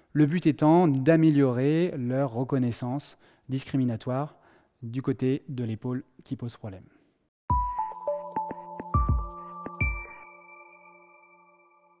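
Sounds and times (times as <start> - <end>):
jingle chord ringing: 7.5 - 12.0.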